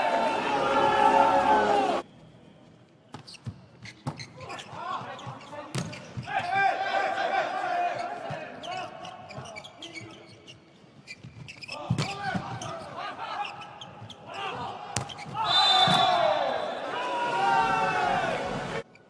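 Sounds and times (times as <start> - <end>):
players shouting: 0.0 - 2.0, 6.2 - 8.9, 14.3 - 18.8.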